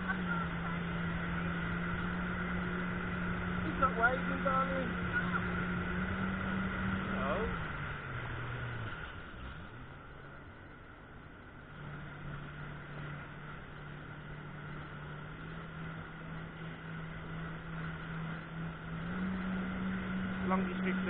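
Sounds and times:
jet ski engine running: 0.0s - 21.0s
water noise: 0.0s - 21.0s.

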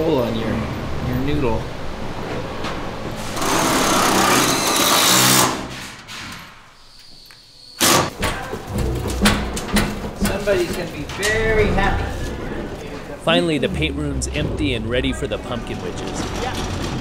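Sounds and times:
pallet jack clanking and rattling: 2.1s - 6.6s, 7.8s - 13.1s, 15.4s - 17.0s
power drill whirring: 3.4s - 5.7s.

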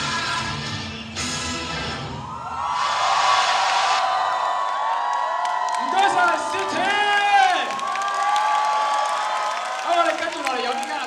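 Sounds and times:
audience screaming and cheering: 1.9s - 11.0s.

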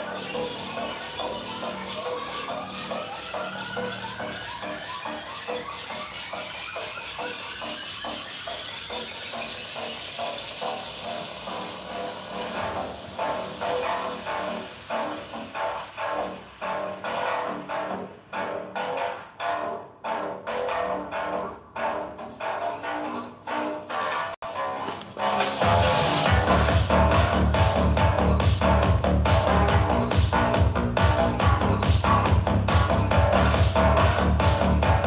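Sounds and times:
electronic workout music: 0.0s - 35.0s.

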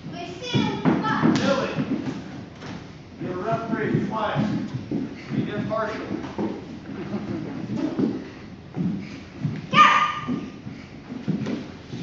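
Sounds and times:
strikes and feet thudding on wood: 0.4s - 12.0s.

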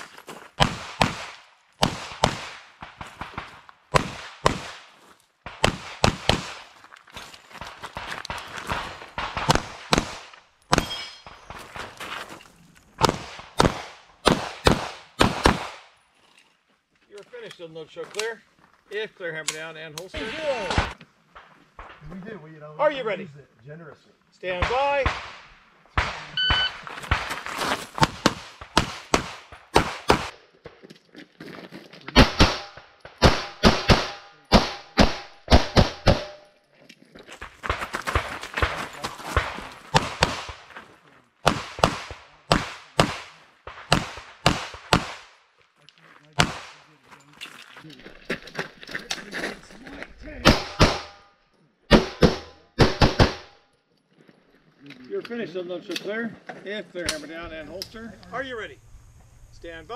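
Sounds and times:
pistol shots: 0.6s - 6.7s, 8.0s - 11.4s, 13.0s - 15.9s, 28.0s - 30.4s, 32.2s - 36.4s, 39.4s - 40.7s, 41.4s - 45.4s, 46.4s - 46.9s, 50.4s - 51.2s, 51.9s - 53.6s
electronic timer beep: 26.4s - 26.8s.

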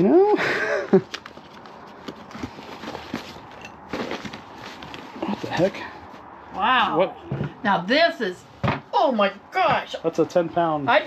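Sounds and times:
paper rustling: 0.9s - 5.7s
objects shifting in box: 1.2s - 5.8s.

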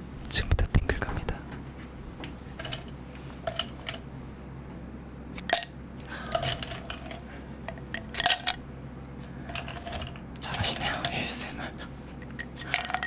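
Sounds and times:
ice cubes clinking in a glass: 12.4s - 13.0s.

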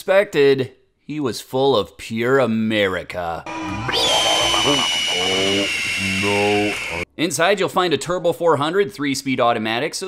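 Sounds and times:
high-pitched ringing tone: 3.5s - 7.0s.

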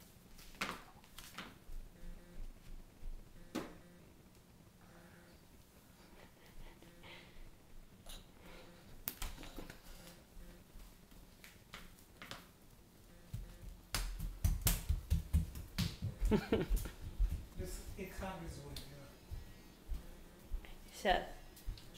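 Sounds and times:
footsteps on tiled floor: 13.2s - 20.8s, 21.5s - 21.9s.

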